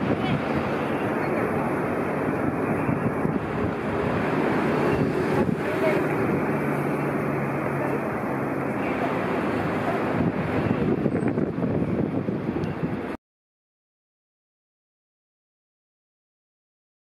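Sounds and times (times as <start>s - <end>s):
bus and car engines: 0.0s - 13.2s.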